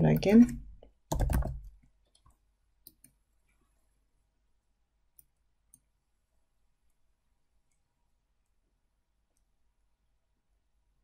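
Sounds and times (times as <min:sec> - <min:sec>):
computer mouse clicks: 0:00.4 - 0:03.2.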